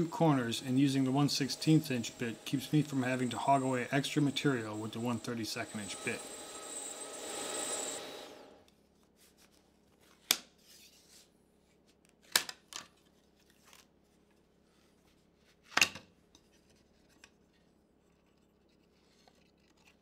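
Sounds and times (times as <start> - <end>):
router spindle winding down: 0.0 - 8.6.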